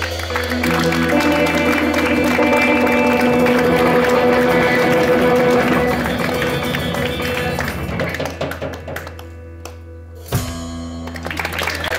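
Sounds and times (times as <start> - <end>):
busy drumming: 0.0 - 9.6
electric guitar: 0.0 - 11.9.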